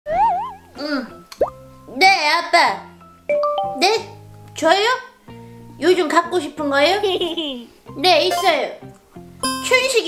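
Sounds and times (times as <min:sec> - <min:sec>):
rising pop-like glide: 0:00.1 - 0:00.6
warbling cartoon tone: 0:00.1 - 0:00.8
light background music: 0:00.1 - 0:10.0.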